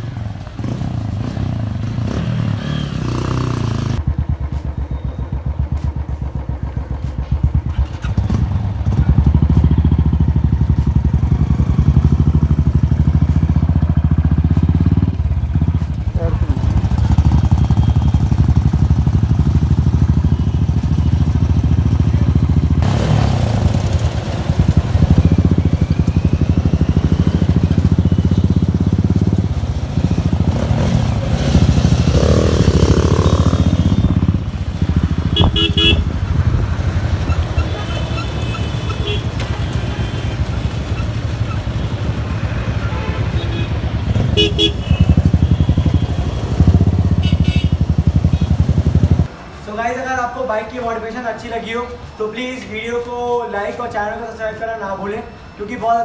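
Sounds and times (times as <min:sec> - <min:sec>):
motorcycle engine running: 0:00.0 - 0:49.3.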